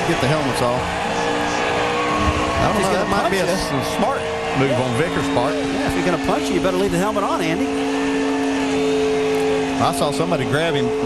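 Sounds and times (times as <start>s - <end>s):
noisy background: 0.0s - 11.0s
steady mechanical hum: 0.2s - 11.0s.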